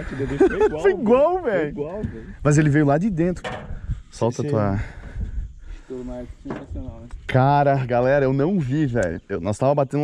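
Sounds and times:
man speaking: 0:00.0 - 0:03.4, 0:04.2 - 0:04.9.

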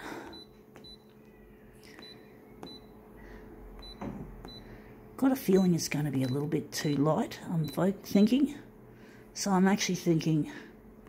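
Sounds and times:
faint steady hum: 0:00.0 - 0:11.0
touchscreen beeps: 0:02.0 - 0:02.9, 0:03.8 - 0:04.6.

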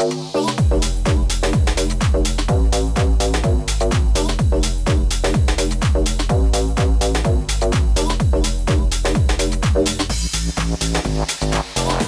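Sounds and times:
electronic dance track: 0:00.0 - 0:12.0.

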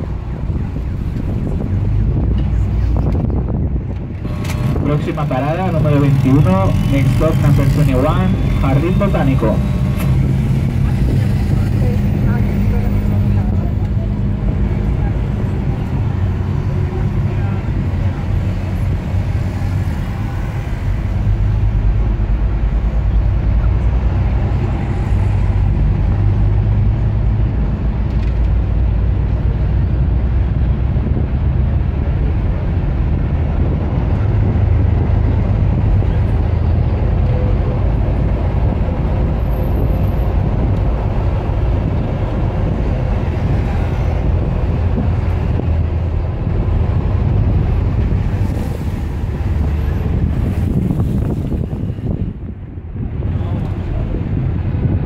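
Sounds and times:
bus engine rumble: 0:00.0 - 0:55.0
passing road traffic: 0:00.0 - 0:55.0.

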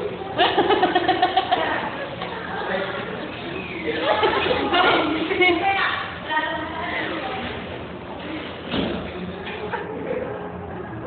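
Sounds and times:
girls giggling: 0:00.2 - 0:05.6.

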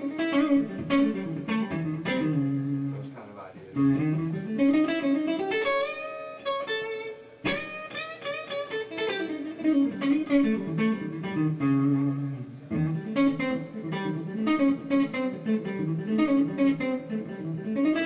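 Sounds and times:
electric guitar fast lick: 0:00.0 - 0:03.1, 0:03.8 - 0:18.0.

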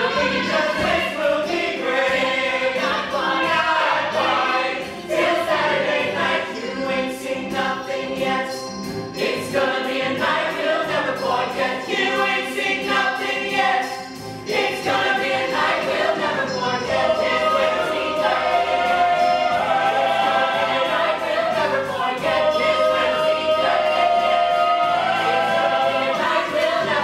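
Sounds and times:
musical accompaniment: 0:00.0 - 0:27.0
ensemble singing: 0:14.5 - 0:27.0.

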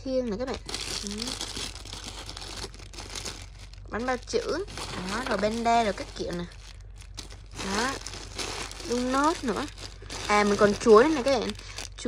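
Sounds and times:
plastic bags crinkling: 0:00.3 - 0:12.0.

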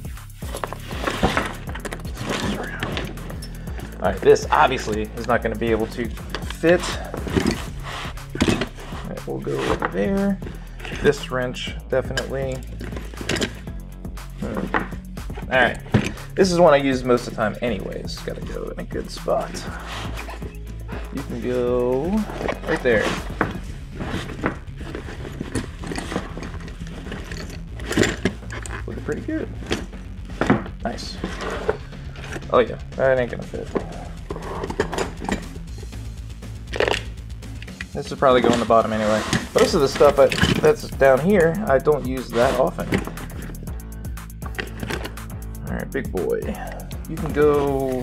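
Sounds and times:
hand tools knocking and clinking: 0:00.6 - 0:07.7, 0:08.3 - 0:08.8, 0:12.0 - 0:13.7, 0:19.3 - 0:32.5, 0:33.6 - 0:35.6, 0:36.8 - 0:43.7.

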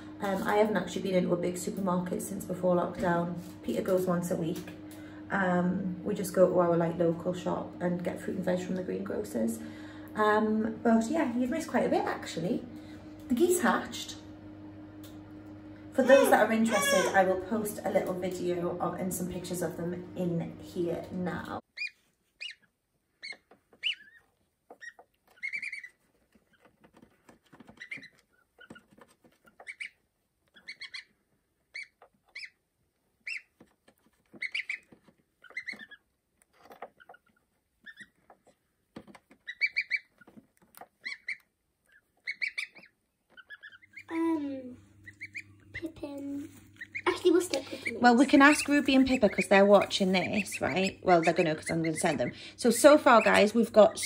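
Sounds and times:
voices: 0:00.0 - 0:14.2, 0:16.0 - 0:21.6, 0:45.7 - 0:54.0
low steady hum: 0:00.0 - 0:54.0
goslings peeping: 0:16.0 - 0:18.1, 0:21.4 - 0:44.2, 0:45.0 - 0:54.0.

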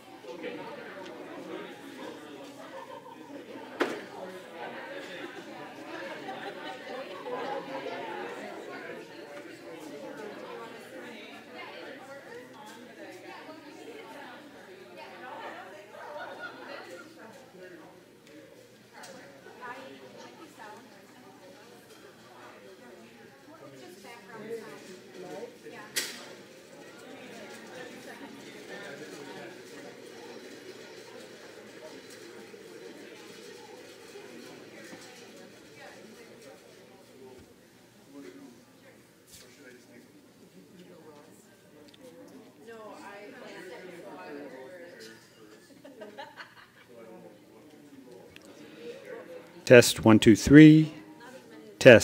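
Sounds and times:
low room murmur: 0:00.0 - 0:49.9
faint voices talking: 0:00.0 - 0:52.0
indistinct chatter of people: 0:00.0 - 0:52.0.

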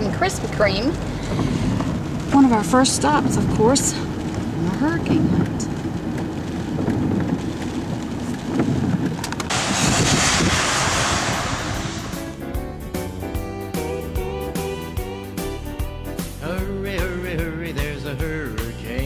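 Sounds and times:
car driving in rain: 0:00.0 - 0:12.7
steady hiss: 0:09.5 - 0:13.2
music with steady beat: 0:12.2 - 0:19.0.

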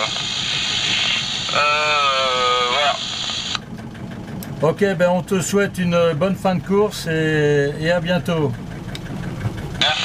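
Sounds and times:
person speaking over radio: 0:00.0 - 0:03.6, 0:09.8 - 0:10.0
radio static hiss: 0:00.0 - 0:03.6, 0:09.8 - 0:10.0.

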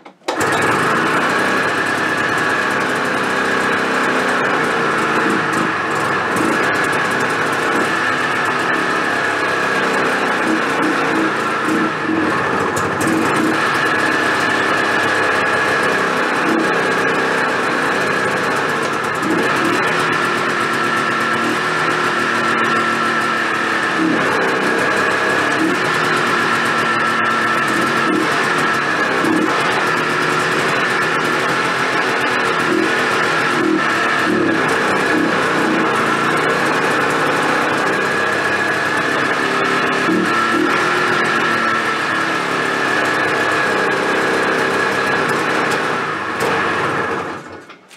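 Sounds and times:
two-stroke snowmobile engine running: 0:00.0 - 0:47.8.

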